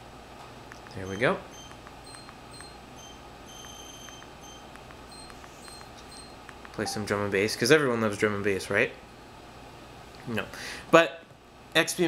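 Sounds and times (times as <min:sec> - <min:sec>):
soft clicks: 0:00.7 - 0:01.0, 0:01.6 - 0:02.8, 0:03.6 - 0:06.8.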